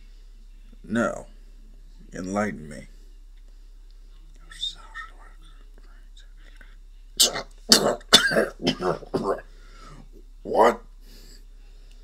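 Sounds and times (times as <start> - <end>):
person whispering: 4.1 - 6.8.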